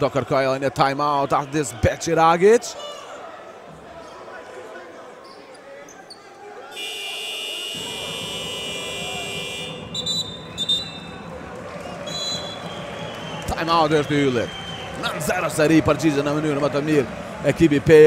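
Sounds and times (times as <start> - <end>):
arena crowd noise: 0.0 - 18.0
electronic buzzer: 6.8 - 9.9
high whistle blasts: 6.8 - 11.1, 12.0 - 15.0.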